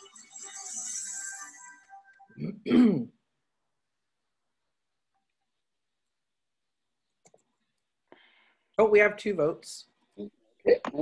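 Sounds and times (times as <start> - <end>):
person clearing throat: 2.4 - 3.2.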